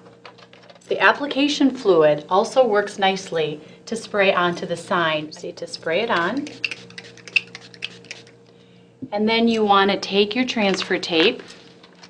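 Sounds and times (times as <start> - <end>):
spray bottle spritzing: 6.4 - 8.4.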